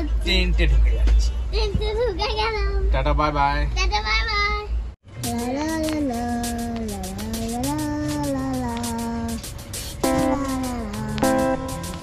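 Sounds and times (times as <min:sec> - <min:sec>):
girl sing-song call: 0:05.2 - 0:12.0.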